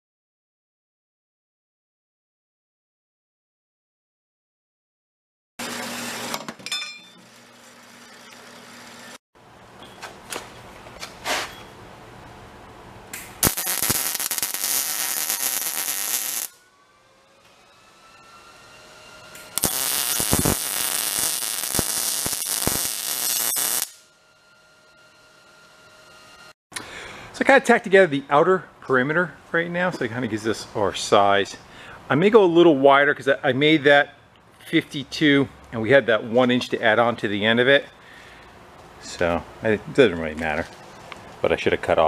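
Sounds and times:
bandsaw humming: 5.6 - 9.2
welder crackling sizzle: 13.2 - 16.6, 19.4 - 24.0.

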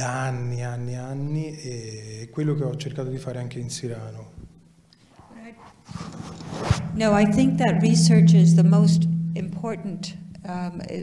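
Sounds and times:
microphone handling rustle: 5.8 - 7.1.

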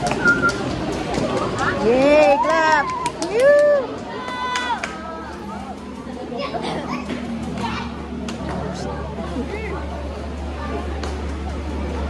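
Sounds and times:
children chattering: 0.0 - 12.0
steady low hum: 3.0 - 12.0.

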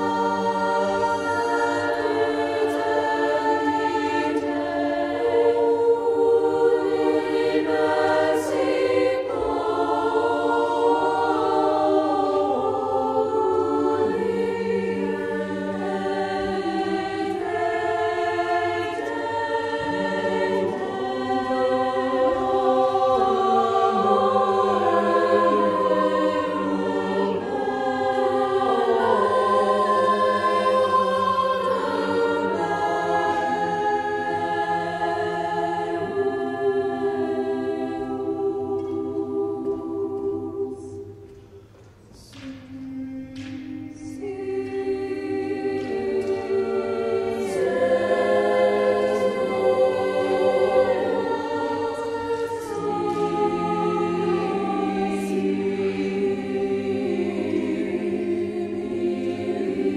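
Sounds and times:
mixed choir singing chords: 0.0 - 59.9.

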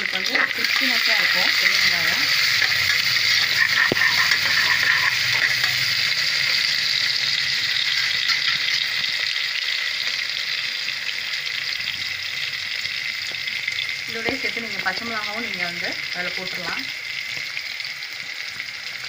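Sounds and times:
onions sizzling in hot oil: 0.0 - 19.0.

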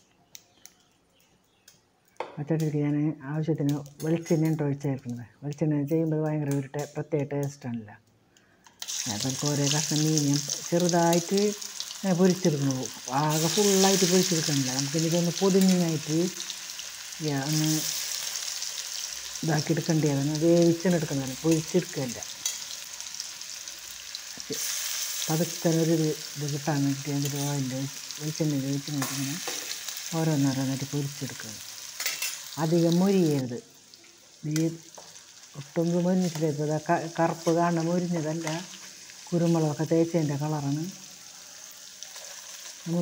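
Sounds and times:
small crackles: 0.0 - 2.8, 41.2 - 43.0
person talking: 2.4 - 8.0, 9.0 - 16.4, 17.2 - 17.9, 19.4 - 22.3, 25.3 - 29.4, 30.1 - 31.6, 32.6 - 33.6, 34.4 - 34.9, 35.6 - 38.7, 39.3 - 41.0
hot oil sizzling: 8.6 - 43.0.

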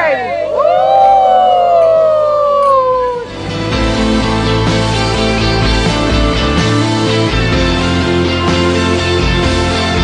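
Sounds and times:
high voice whooping: 0.0 - 3.3
people cheering: 0.0 - 3.3.

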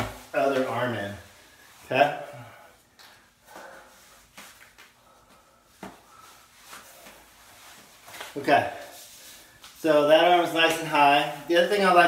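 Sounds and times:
rubber wetsuit rubbing and rustling: 6.1 - 11.9.

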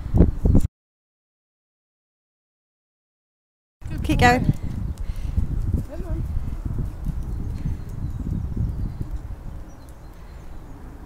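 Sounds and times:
footsteps on tarmac: 4.0 - 10.4.

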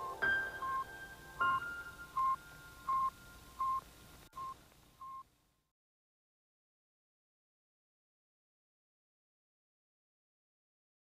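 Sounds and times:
ambient electronic music: 0.0 - 3.4
short electronic beeps: 0.6 - 5.2.

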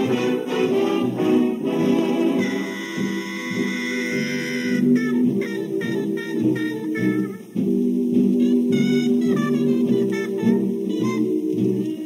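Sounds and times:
big band jazz playing: 0.0 - 12.0.

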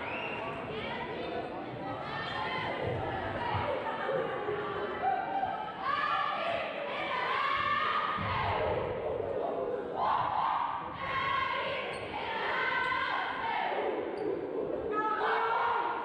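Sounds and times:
girls chanting a cheer: 1.9 - 9.0, 9.9 - 14.2, 14.9 - 16.0.

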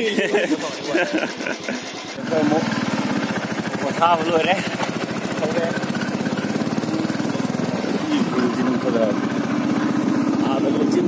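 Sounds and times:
vehicle engine pulsing: 0.0 - 11.0.

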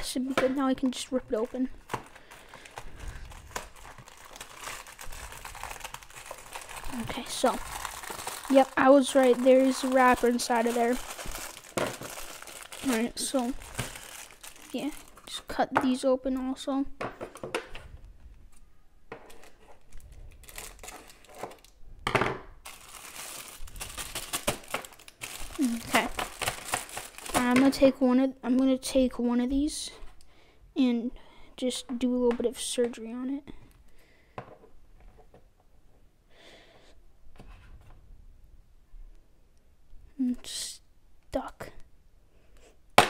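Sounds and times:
plastic wrapper crinkling: 1.0 - 15.5, 19.3 - 21.8, 22.6 - 27.9.

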